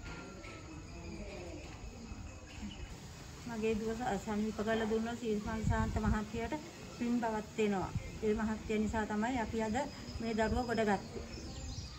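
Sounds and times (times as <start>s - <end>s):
insects chirring: 0.0s - 11.9s.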